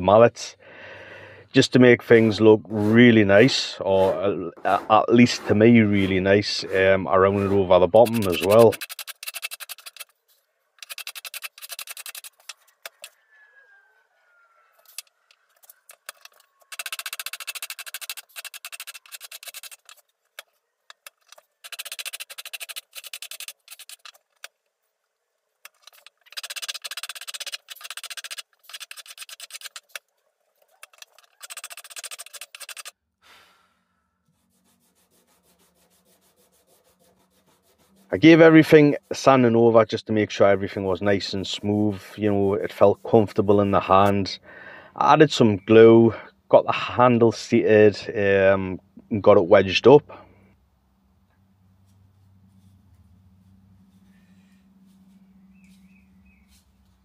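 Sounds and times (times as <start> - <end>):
hand tool scraping wood: 1.7 - 13.1, 14.7 - 24.6, 25.6 - 33.6, 34.3 - 44.4.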